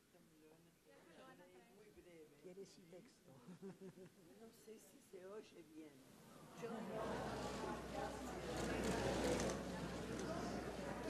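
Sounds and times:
murmur of voices: 6.2 - 11.0.

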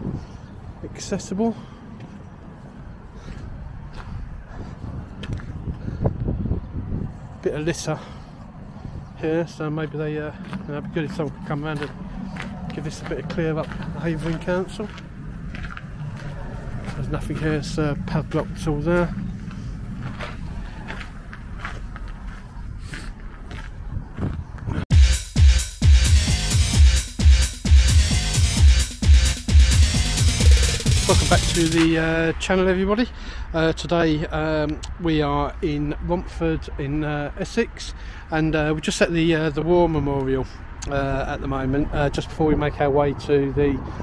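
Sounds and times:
distant road traffic rumble: 0.0 - 24.8, 29.7 - 44.0
footsteps on paving: 1.9 - 5.9, 9.6 - 24.8
low steady background rumble: 9.2 - 22.6.

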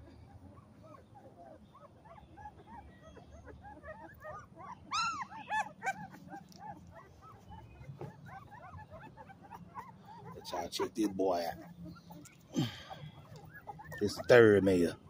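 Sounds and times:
puppies whimpering and squeaking: 0.0 - 15.0.

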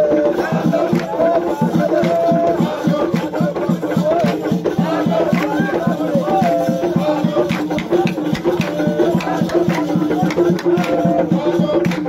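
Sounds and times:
drum and rattle percussion music: 0.0 - 12.0
voices: 0.0 - 12.0.

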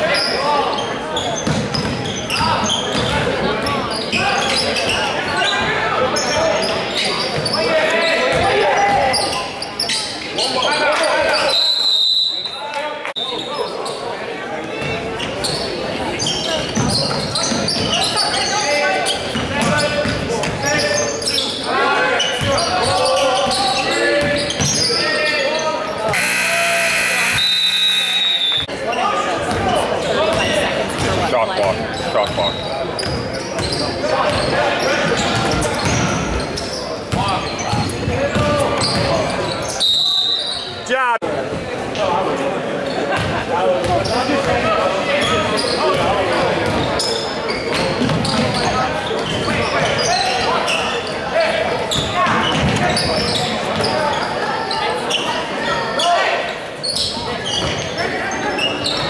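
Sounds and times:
people shouting and talking: 0.0 - 59.0
referee's whistle: 11.4 - 12.6, 26.1 - 28.7, 39.8 - 40.7
scoreboard horn blaring: 26.1 - 28.6.

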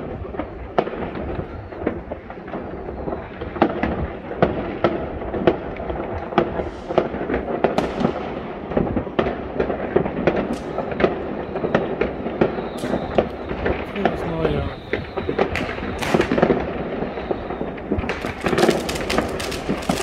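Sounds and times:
distant fireworks bangs: 0.0 - 20.0
fireworks bangs and pops: 0.0 - 20.0.

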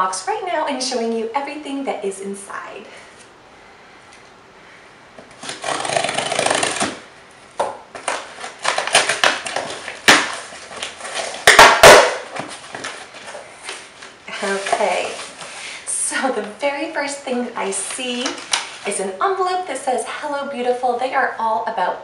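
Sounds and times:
packing rustling and crinkling: 5.2 - 7.1, 7.9 - 16.4, 17.6 - 19.2
cardboard tearing and scraping: 5.3 - 7.1, 8.0 - 15.6.

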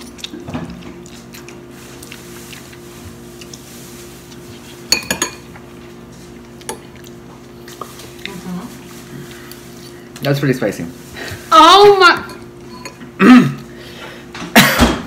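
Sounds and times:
forks clinking against bowls: 4.9 - 5.5, 12.2 - 13.0.

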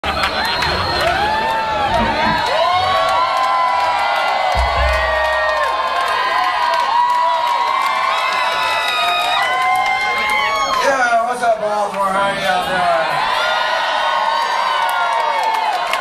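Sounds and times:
crowd cheering and whooping: 0.0 - 11.0, 12.9 - 16.0
low boom: 4.5 - 5.9.

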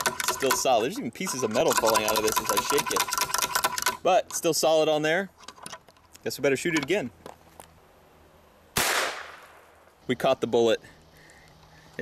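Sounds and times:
rifle shot: 8.8 - 9.8.

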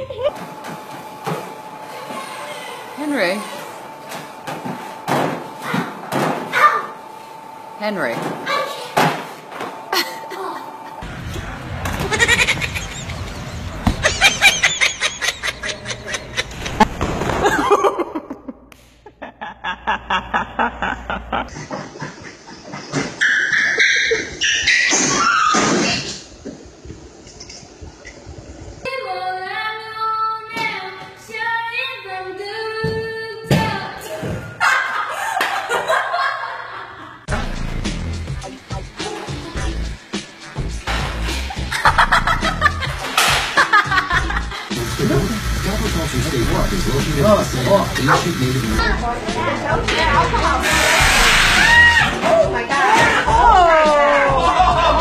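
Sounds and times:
girl singing slow melody: 28.9 - 34.0.

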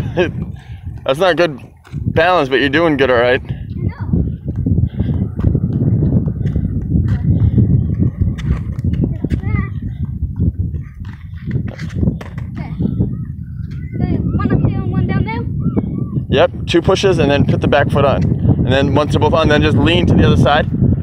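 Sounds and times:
skateboard wheels rumbling on concrete: 0.0 - 13.4.

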